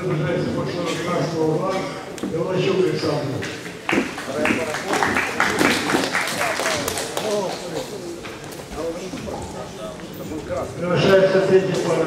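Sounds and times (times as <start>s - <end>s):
crowd chatter: 0.0s - 12.0s
audience clapping: 3.6s - 8.7s
men's voices: 4.2s - 12.0s.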